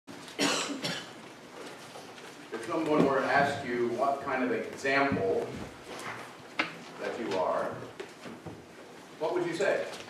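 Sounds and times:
short coughs: 0:00.4 - 0:01.2.

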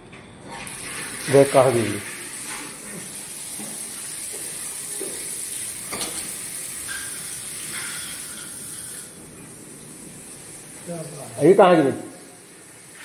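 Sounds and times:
steady background hiss: 0:00.6 - 0:13.0.

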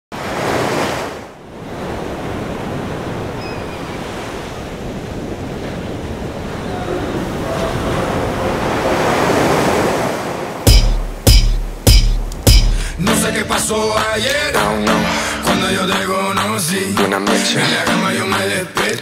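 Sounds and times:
waves breaking on rocky shore: 0:00.2 - 0:13.0.

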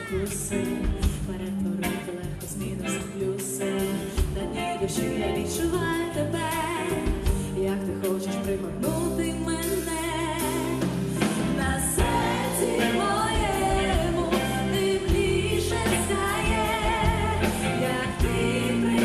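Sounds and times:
live band playing: 0:00.0 - 0:19.0
woman singing with vibrato: 0:00.0 - 0:19.0.

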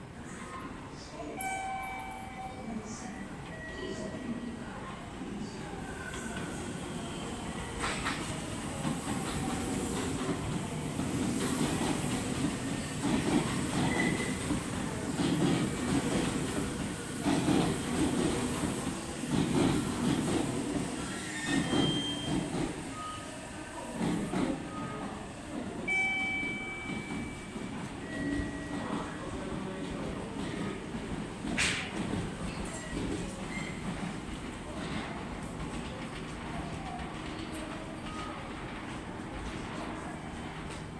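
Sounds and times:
train wheel squeals: 0:12.8 - 0:14.6, 0:20.8 - 0:23.4, 0:32.5 - 0:34.0.

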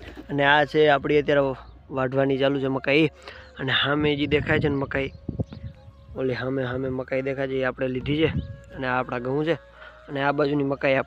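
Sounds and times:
man speaking: 0:00.3 - 0:05.2, 0:06.2 - 0:11.0.

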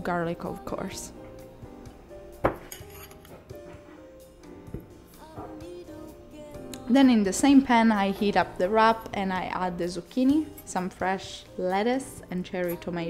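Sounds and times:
soft background music: 0:00.0 - 0:13.0
metal utensil clinking ceramic bowl: 0:02.5 - 0:03.5.

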